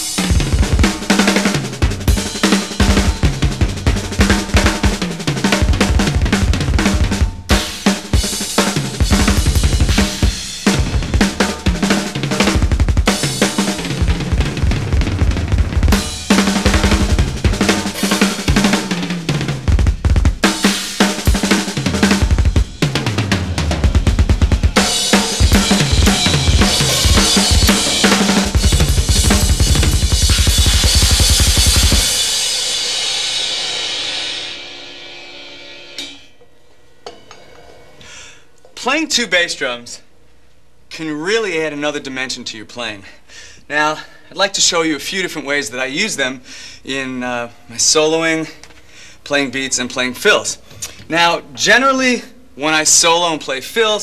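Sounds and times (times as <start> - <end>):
snare tom and cymbal hits: 0.0 - 36.4
double bass drum strokes: 1.8 - 20.5
cymbal crash ringing: 20.5 - 38.6.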